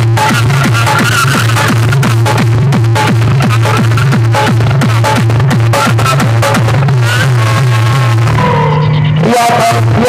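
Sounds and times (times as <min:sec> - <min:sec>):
pounding kick drum: 0:00.0 - 0:08.4
heavy bass line: 0:00.0 - 0:10.0
loud electronic dance music: 0:00.0 - 0:10.0.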